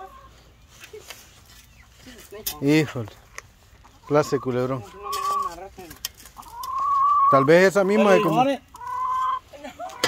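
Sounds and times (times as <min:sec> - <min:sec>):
geese honking: 0:06.4 - 0:10.0.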